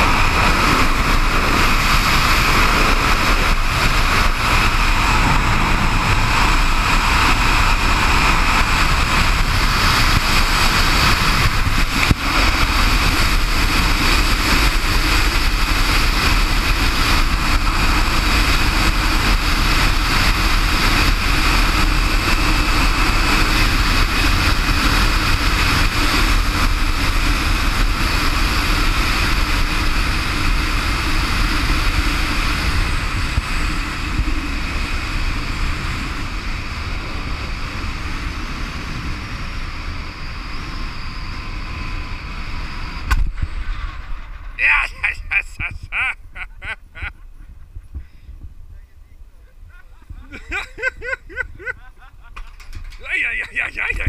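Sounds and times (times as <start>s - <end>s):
zipline trolley whirring on cable: 0.0s - 47.6s, 49.4s - 54.0s
wind rushing over microphone: 0.0s - 52.0s.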